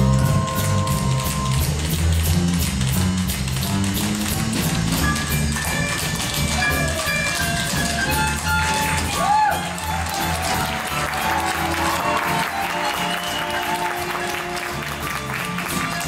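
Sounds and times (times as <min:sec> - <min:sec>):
music with steady bass line: 0:00.0 - 0:16.0
tap shoes on wooden floor: 0:00.4 - 0:11.9.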